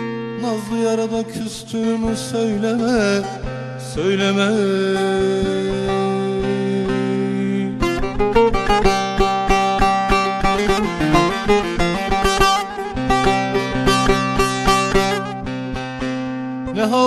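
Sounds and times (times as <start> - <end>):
long-necked lute picked melody: 0.0 - 17.0.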